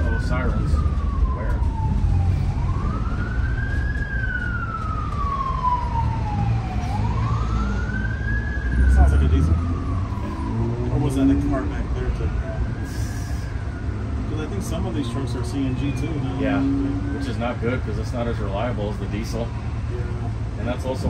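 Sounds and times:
siren wailing: 0:00.0 - 0:19.9
bus diesel engine running: 0:00.0 - 0:21.0.

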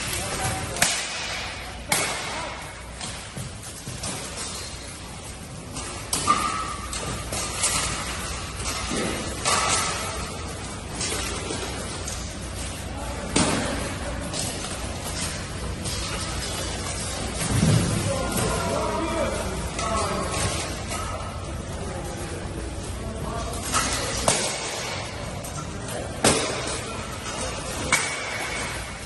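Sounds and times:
armoured fighters clashing: 0:23.1 - 0:29.0.

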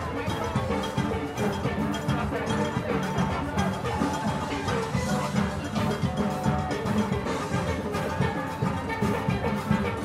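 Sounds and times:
percussion rhythm section: 0:00.0 - 0:10.0.

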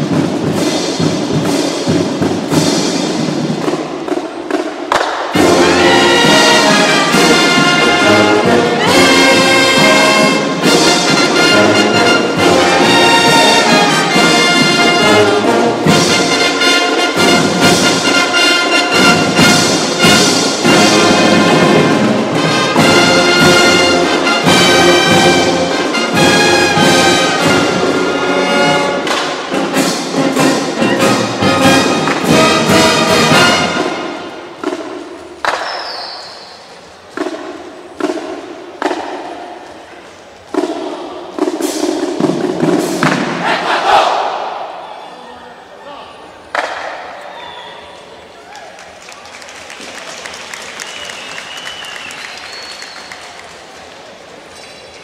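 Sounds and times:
marching band playing: 0:00.0 - 0:35.6, 0:36.6 - 0:44.8.

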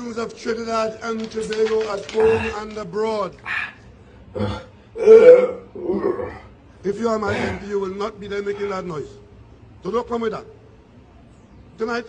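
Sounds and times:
man burping: 0:04.3 - 0:06.5.

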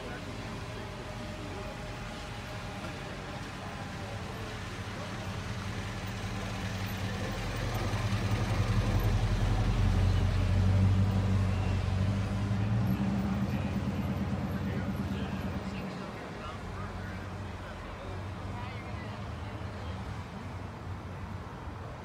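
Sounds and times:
car engine idling: 0:00.0 - 0:19.9.

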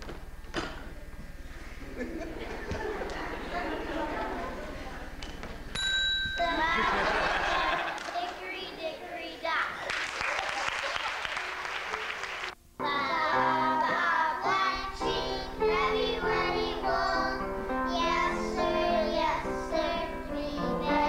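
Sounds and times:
applause: 0:07.8 - 0:08.4, 0:09.8 - 0:12.6
children singing: 0:12.8 - 0:21.0.

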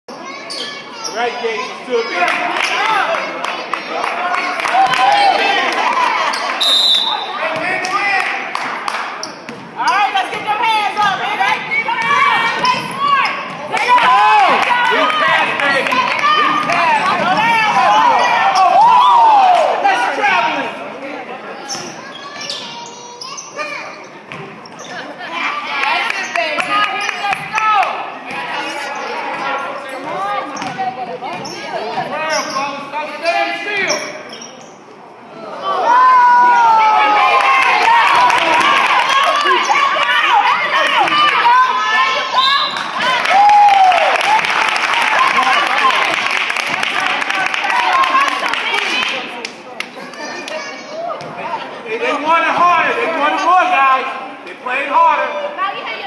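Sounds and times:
people shouting: 0:10.6 - 0:20.7.

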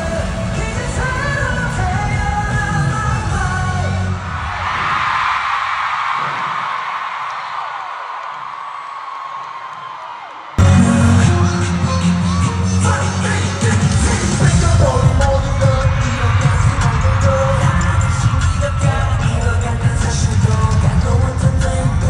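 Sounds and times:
pop music with singing: 0:00.0 - 0:04.6, 0:10.6 - 0:22.0
crowd screaming and cheering: 0:00.0 - 0:22.0.

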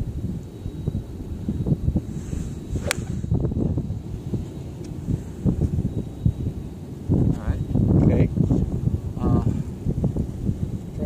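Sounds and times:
wind rumble on microphone: 0:00.0 - 0:11.0
golf club swish: 0:02.2 - 0:03.4
club striking ball crack: 0:02.8 - 0:03.3.

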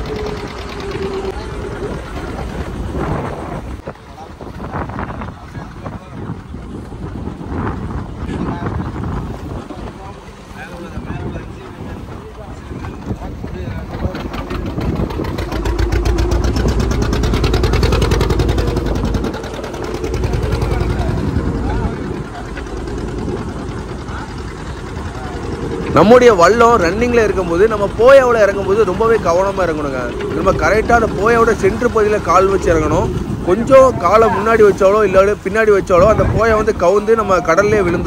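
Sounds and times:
boat engine running: 0:00.0 - 0:38.0
faint voices: 0:00.0 - 0:38.0
rushing water: 0:00.0 - 0:38.0
wind: 0:00.0 - 0:38.0.

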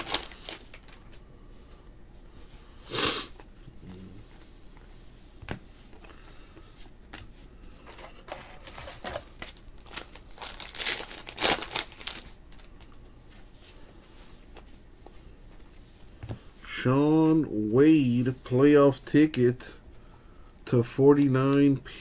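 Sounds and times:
cards crinkling and rustling: 0:00.0 - 0:01.2, 0:07.1 - 0:13.0, 0:21.1 - 0:21.8.

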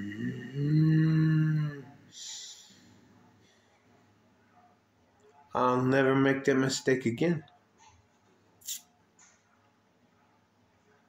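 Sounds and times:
man moaning with closed lips: 0:00.0 - 0:02.6
man sighing: 0:00.0 - 0:02.7.

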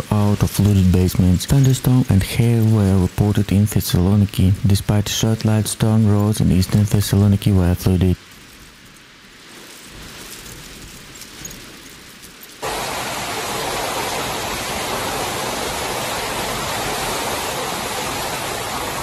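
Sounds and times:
hail and heavy rain falling: 0:00.0 - 0:19.0.

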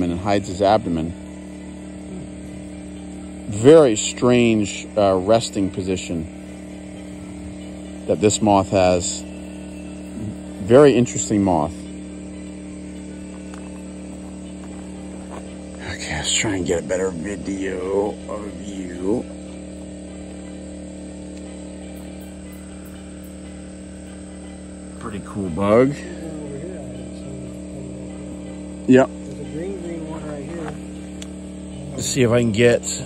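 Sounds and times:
generator humming: 0:00.0 - 0:33.0.

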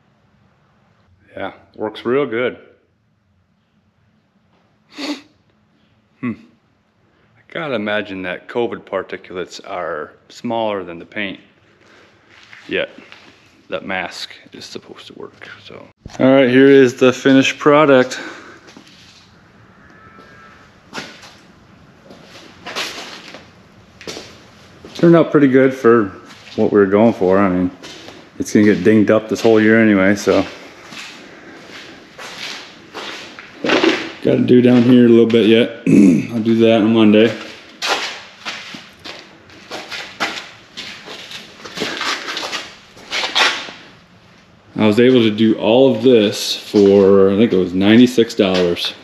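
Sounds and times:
footsteps scuffing on concrete: 0:27.8 - 0:34.1, 0:37.3 - 0:43.8.

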